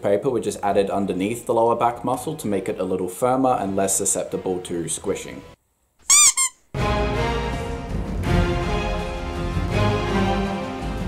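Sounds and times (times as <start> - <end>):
rubber squeaky toy squeaks: 6.0 - 6.7
background music: 6.8 - 11.0.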